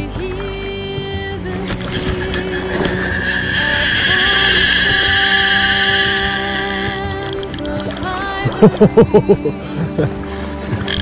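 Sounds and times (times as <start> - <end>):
fly reel drag screaming: 1.6 - 8.6.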